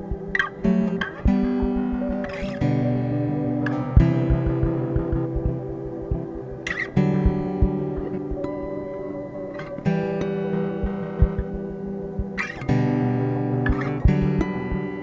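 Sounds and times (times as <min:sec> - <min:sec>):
ambient guitar chords with reverb: 0:00.0 - 0:15.0
soft low thumps: 0:07.2 - 0:08.5, 0:10.8 - 0:12.4.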